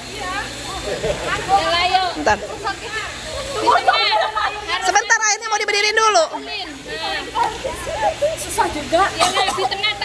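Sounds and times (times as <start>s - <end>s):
girls talking and calling out: 0.0s - 10.0s.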